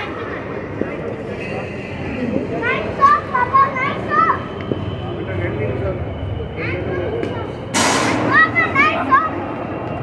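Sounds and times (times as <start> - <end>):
steady background noise: 0.0 - 10.0
child calling: 2.6 - 4.5.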